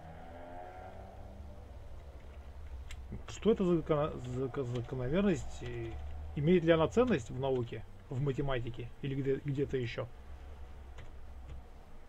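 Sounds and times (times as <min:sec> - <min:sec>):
low background hum: 0:00.6 - 0:12.0.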